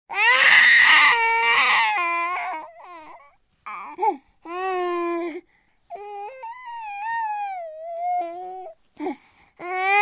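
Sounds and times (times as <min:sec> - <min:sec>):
baby screaming cry: 0:00.1 - 0:03.9.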